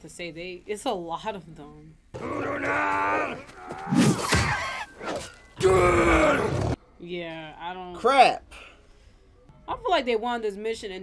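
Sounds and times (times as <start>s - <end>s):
yelling voices: 2.2s - 5.0s.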